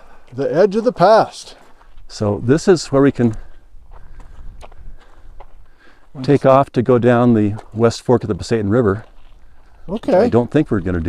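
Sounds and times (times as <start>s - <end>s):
footsteps on gravel: 0.1s - 2.2s, 3.3s - 6.4s, 7.4s - 7.9s, 8.6s - 11.0s.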